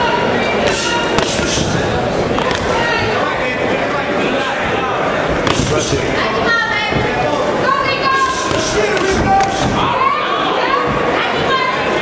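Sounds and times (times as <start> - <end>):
crowd noise: 0.0 - 12.0
boxing gloves smacking: 1.2 - 1.7, 8.5 - 9.5
people shouting: 7.7 - 11.6.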